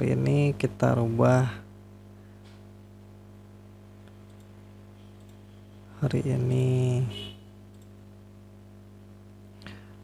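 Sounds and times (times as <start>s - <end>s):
computer mouse click: 4.0s - 4.5s, 7.7s - 8.0s.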